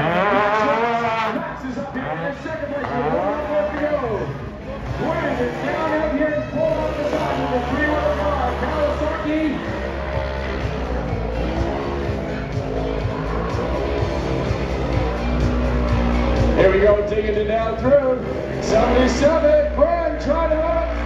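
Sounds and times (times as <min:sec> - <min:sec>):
music over loudspeakers: 0:00.0 - 0:21.0
racing vehicle engines: 0:00.0 - 0:21.0.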